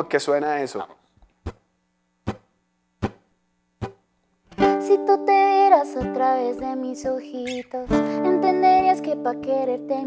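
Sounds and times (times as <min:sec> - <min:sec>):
faint steady hum: 0:00.0 - 0:10.0
sharp percussive taps: 0:01.4 - 0:04.0.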